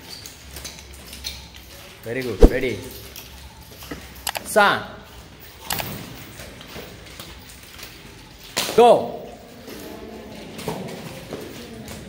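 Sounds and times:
nunchaku clicks and swishes: 0.6s - 3.2s.

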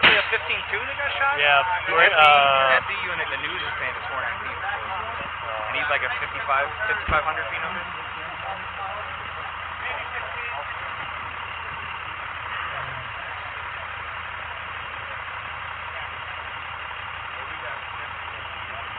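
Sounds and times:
faint indistinct voices: 0.0s - 18.9s
vehicle engine idling: 0.0s - 18.9s.

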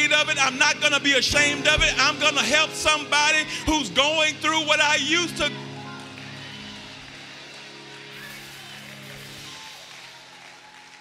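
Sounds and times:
soft keyboard chord: 0.0s - 9.7s.

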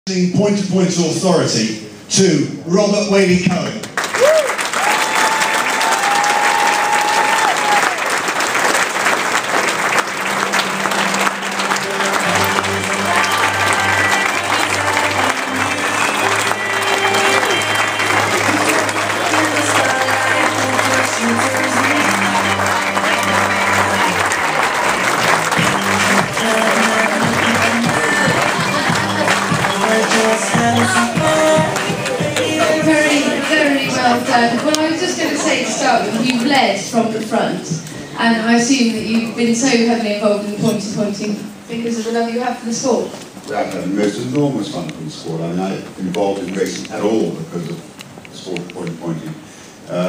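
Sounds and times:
audience applause: 3.9s - 36.5s
music playing: 9.4s - 36.4s.

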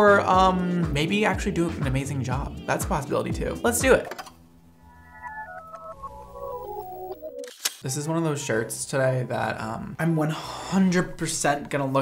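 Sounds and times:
descending electronic notes: 4.4s - 7.5s.

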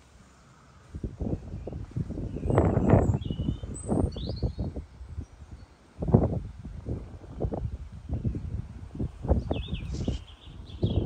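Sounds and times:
wind buffeting microphone: 0.8s - 11.0s
faint bird chirps: 9.4s - 11.0s.

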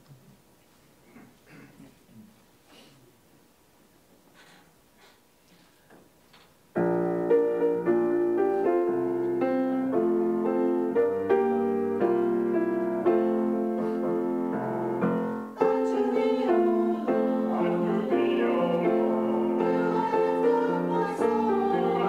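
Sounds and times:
grand piano playing chords: 6.7s - 22.0s.

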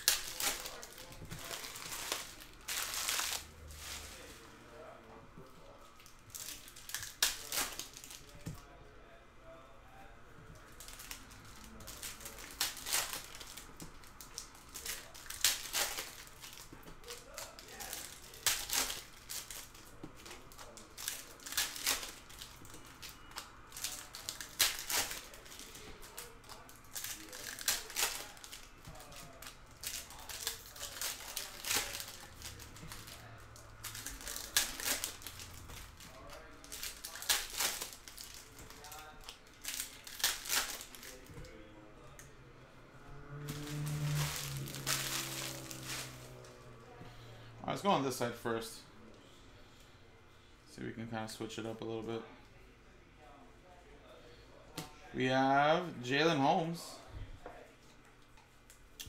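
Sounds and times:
card pack wrappers torn and crinkled: 0.0s - 4.5s, 6.0s - 8.4s, 10.6s - 41.6s, 43.4s - 46.5s.

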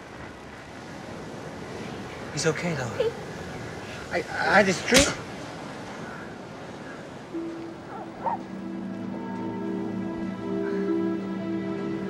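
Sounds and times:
dramatic score sustained chord: 7.3s - 12.0s.

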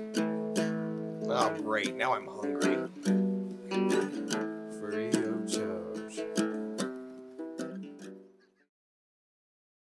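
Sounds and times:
acoustic guitar strumming: 0.0s - 8.6s.

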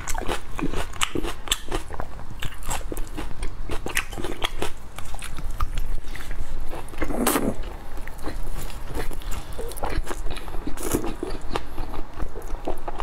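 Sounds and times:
person chewing: 0.0s - 13.0s.

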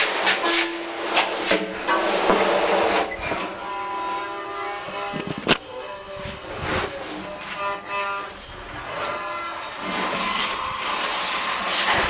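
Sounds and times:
people crawling in a concrete pipe: 0.0s - 12.0s
droning held tones: 1.8s - 12.0s.

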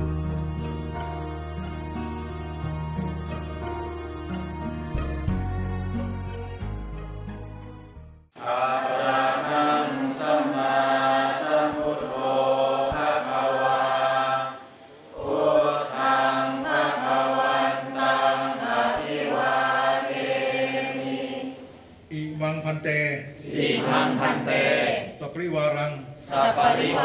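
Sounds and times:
many voices chanting in unison: 8.4s - 21.9s, 23.2s - 25.3s, 26.2s - 27.0s.

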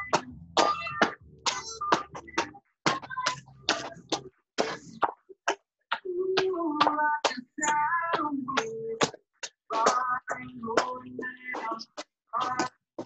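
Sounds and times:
person singing: 0.0s - 4.8s, 5.9s - 9.1s, 9.7s - 13.0s
music with percussive beat: 0.0s - 5.2s.

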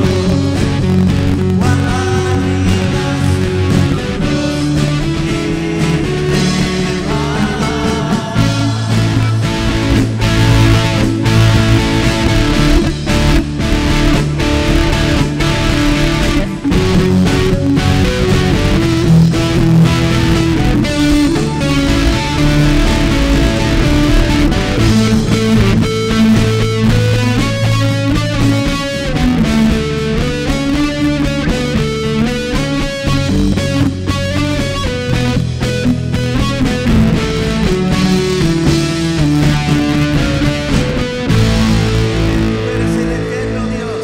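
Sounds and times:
live band playing: 0.0s - 44.0s.

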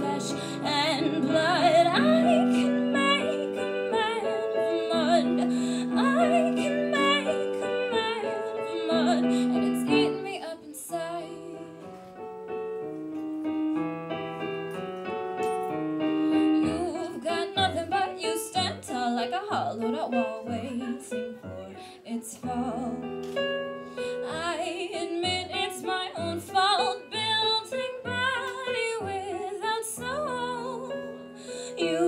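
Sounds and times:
digital piano chords: 0.0s - 32.0s.

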